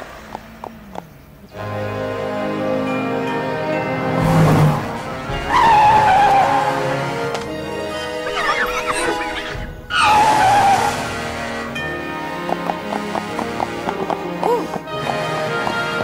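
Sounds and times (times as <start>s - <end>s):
film music: 1.5s - 16.0s
whinny-like animal call: 7.8s - 11.1s.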